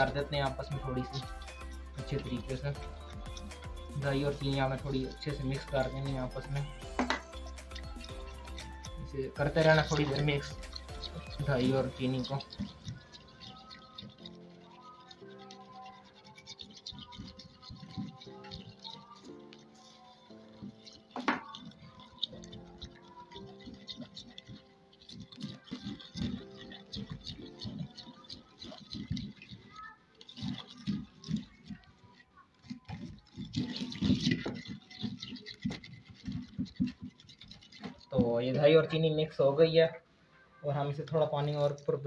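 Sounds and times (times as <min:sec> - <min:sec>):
background music with held notes: 0:00.0 - 0:29.5
sugar scraping in clay bowl: 0:00.0 - 0:39.7, 0:40.8 - 0:42.0
spoon stirring wet yogurt: 0:00.0 - 0:39.8, 0:40.7 - 0:42.0.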